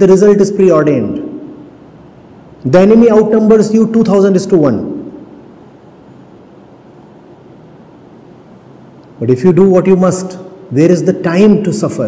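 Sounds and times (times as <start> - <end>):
steady low room noise: 0.0 - 12.0.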